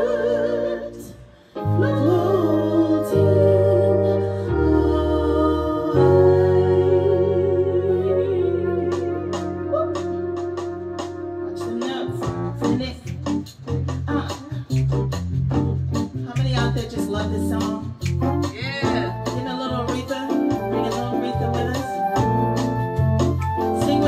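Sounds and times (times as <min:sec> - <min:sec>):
bass line: 0:00.0 - 0:24.0
live band playing: 0:00.0 - 0:24.0
organ-toned keyboards: 0:00.0 - 0:24.0
drums: 0:08.8 - 0:24.0.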